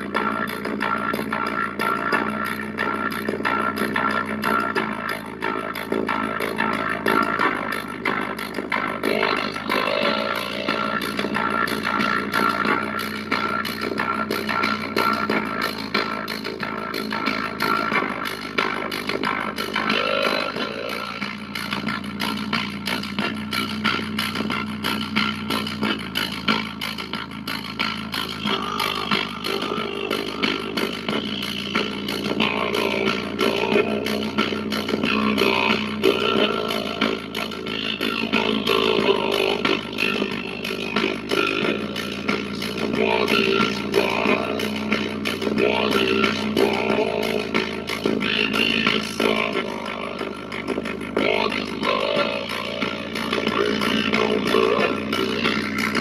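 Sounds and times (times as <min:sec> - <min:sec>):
dance music on a speaker: 0:00.0 - 0:56.0.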